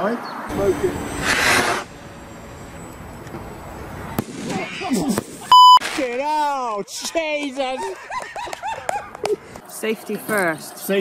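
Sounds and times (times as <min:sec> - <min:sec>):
firework hiss: 0:00.7 - 0:02.0
firework crack: 0:01.0 - 0:02.2, 0:03.9 - 0:06.2.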